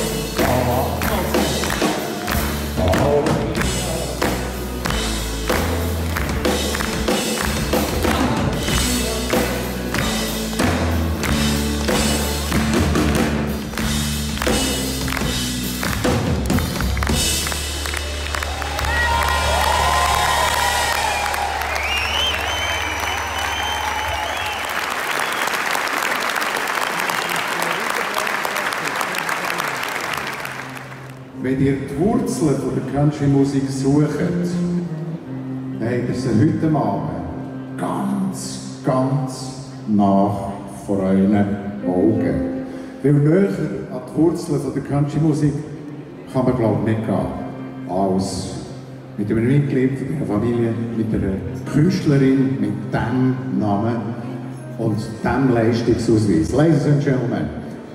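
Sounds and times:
steady drumbeat: 0:00.0 - 0:18.2
live country band playing: 0:00.0 - 0:57.9
audience applause: 0:00.3 - 0:31.3.

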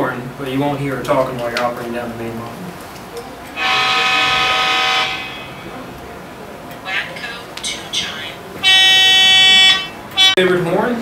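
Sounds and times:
locomotive air horn blast: 0:03.6 - 0:05.8, 0:08.6 - 0:10.4.

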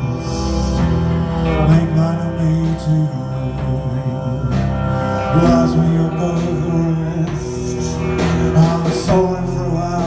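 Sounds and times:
bowed violin: 0:00.0 - 0:10.0
drums: 0:00.0 - 0:10.0
electric guitar: 0:00.0 - 0:10.0.

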